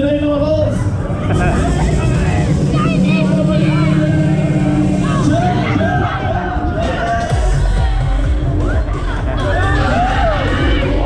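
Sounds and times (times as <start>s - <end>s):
fairground ride running: 0.0s - 11.0s
steady low hum: 0.0s - 11.0s
music: 0.6s - 11.0s.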